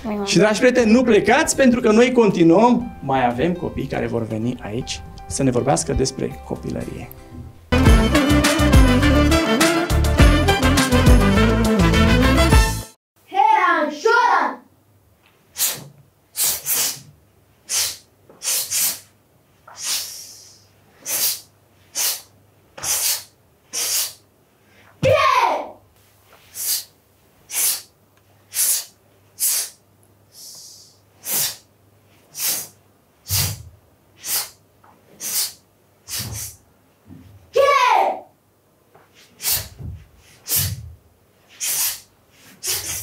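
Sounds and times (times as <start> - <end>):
sharp hissing exhalations: 15.5 - 19.1, 19.7 - 24.8, 26.4 - 27.9, 28.5 - 33.6, 34.2 - 34.6, 35.2 - 36.6, 39.2 - 40.8, 41.5 - 43.0.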